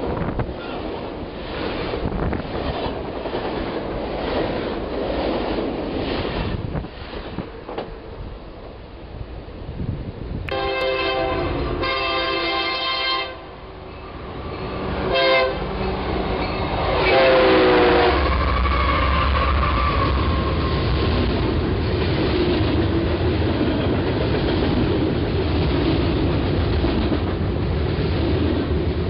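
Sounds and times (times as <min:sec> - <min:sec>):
train rumbling past: 0:00.0 - 0:29.0
locomotive air horn blasts: 0:10.5 - 0:13.5, 0:15.0 - 0:15.8, 0:16.8 - 0:19.2.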